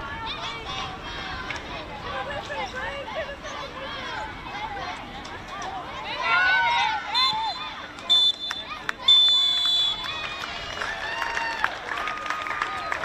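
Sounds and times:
players shouting: 0:00.0 - 0:11.6
referee's whistle blasts: 0:07.1 - 0:10.1.

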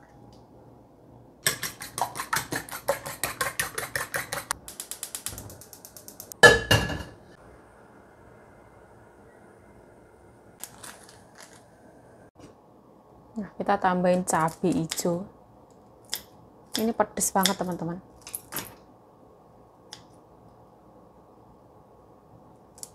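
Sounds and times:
spoon beating eggs in metal bowl: 0:01.4 - 0:06.3
metal wok clanging on stove: 0:06.4 - 0:07.2.

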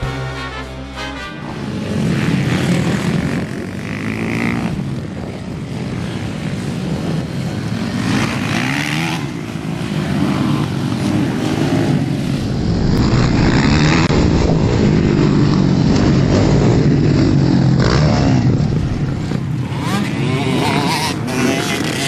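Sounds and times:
dirt-bike engines revving: 0:00.0 - 0:22.0.

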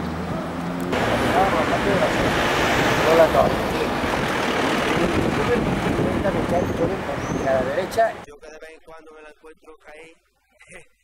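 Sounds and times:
street noise hum: 0:00.0 - 0:08.3.

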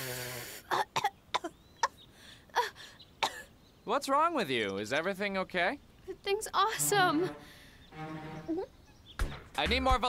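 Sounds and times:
woman coughing: 0:00.7 - 0:02.0, 0:02.6 - 0:03.5.

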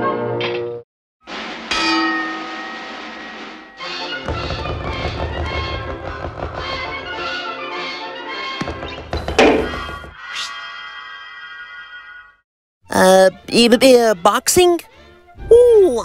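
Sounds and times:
boxing ring bell clanging: 0:01.7 - 0:03.8.

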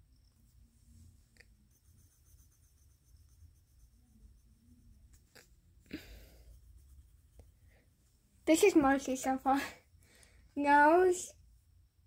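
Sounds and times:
pencil strokes on paper: 0:00.2 - 0:09.2.

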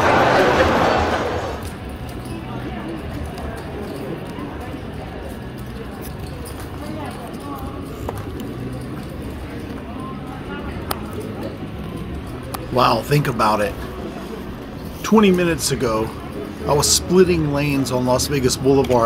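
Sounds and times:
chatter of many voices: 0:00.0 - 0:19.0.

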